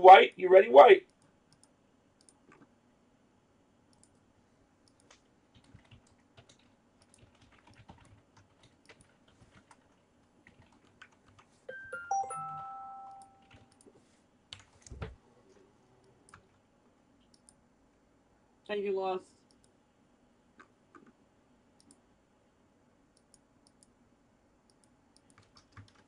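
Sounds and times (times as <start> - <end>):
keyboard and mouse clicks: 1.1 - 2.7, 3.9 - 4.2, 4.8 - 11.5, 12.1 - 13.9, 17.2 - 17.6, 20.6 - 21.2, 21.8 - 22.0, 24.7 - 26.0.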